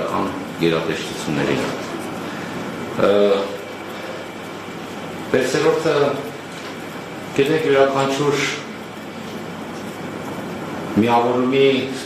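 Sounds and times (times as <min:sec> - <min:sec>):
room background noise: 0:00.0 - 0:12.0.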